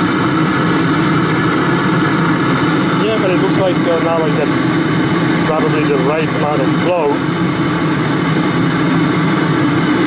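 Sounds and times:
oil burner rumbling: 0.0 - 10.0.

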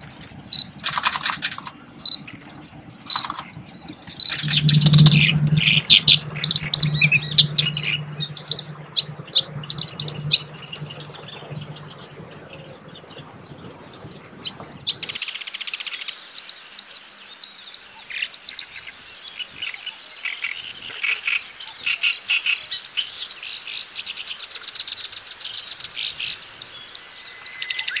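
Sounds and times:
reed warbler singing: 0.0 - 15.4.

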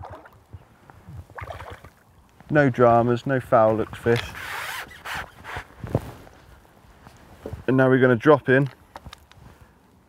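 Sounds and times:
rustling and scraping of wet net: 3.7 - 7.7.

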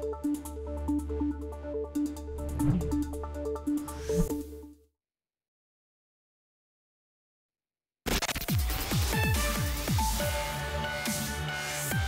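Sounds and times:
bass notes sliding down: 2.2 - 4.2.

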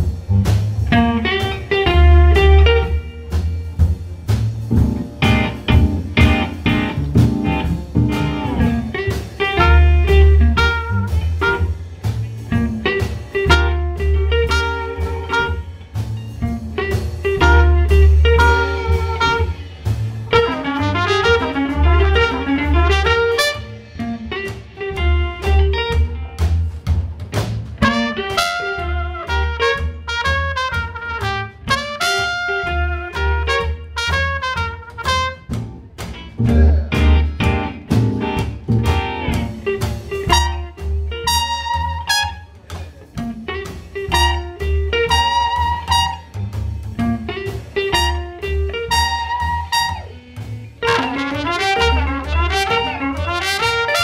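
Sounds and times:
western swing band playing: 0.0 - 54.0
trumpet melody: 9.5 - 11.8, 13.4 - 15.7, 17.3 - 19.7, 20.3 - 26.0, 27.8 - 35.6, 39.3 - 42.6, 44.0 - 46.4, 47.4 - 54.0.

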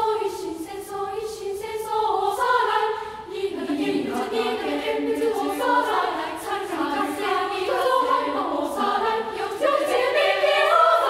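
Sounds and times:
girls' choir singing unaccompanied: 0.0 - 11.0.

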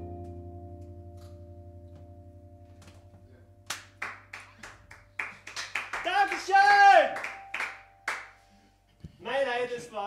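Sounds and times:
hand claps: 2.8 - 8.4.

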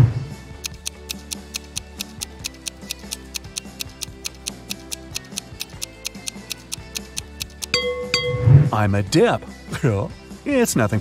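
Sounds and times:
soft background music: 0.0 - 11.0
countdown timer ticking: 0.6 - 8.8.

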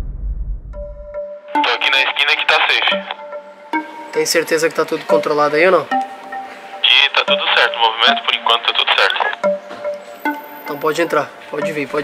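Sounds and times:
background music: 0.7 - 12.0
voice through walkie-talkie: 1.6 - 3.2, 6.8 - 9.4.

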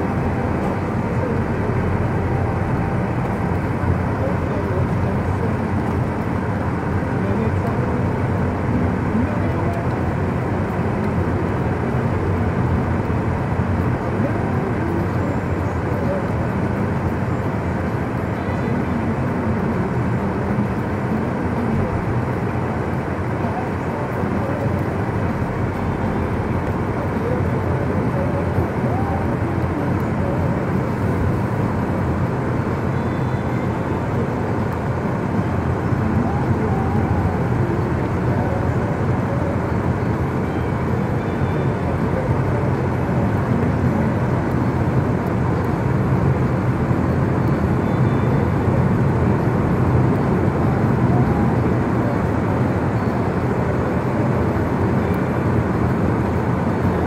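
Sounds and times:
car road and engine noise: 0.0 - 57.0.

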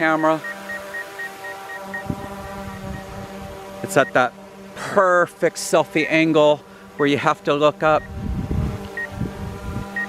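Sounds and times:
faint rapid beeping: 0.0 - 3.1, 4.0 - 4.2
drone propellers whining: 0.0 - 10.0
wind buffeting microphone: 2.0 - 3.6, 7.9 - 10.0.

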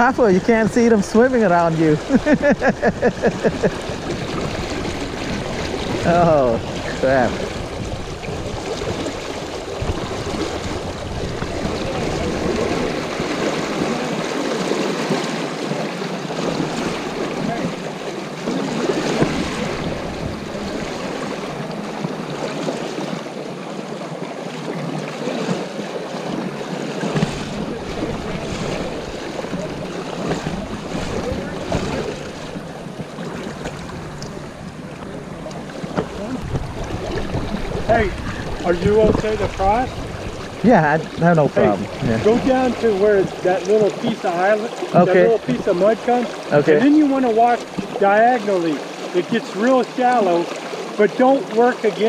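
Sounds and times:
wind buffeting microphone: 0.0 - 15.6, 16.3 - 22.5, 27.1 - 44.2
river current rushing and splashing: 0.0 - 52.0.

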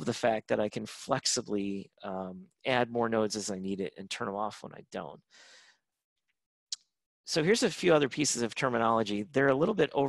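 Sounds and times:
person breathing in: 5.3 - 5.8.

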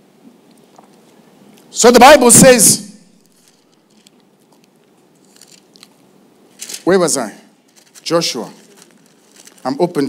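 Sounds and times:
man speaking: 1.7 - 3.0, 6.8 - 8.7, 9.6 - 10.0.

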